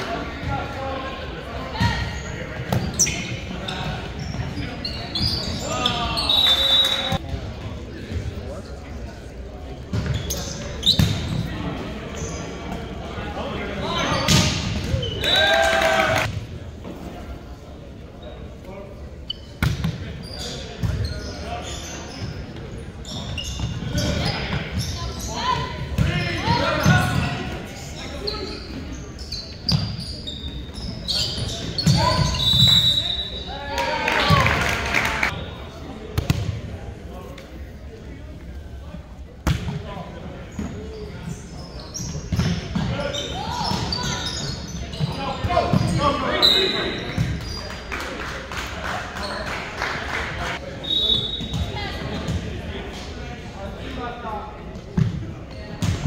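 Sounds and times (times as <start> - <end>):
players shouting: 15.0 - 16.3.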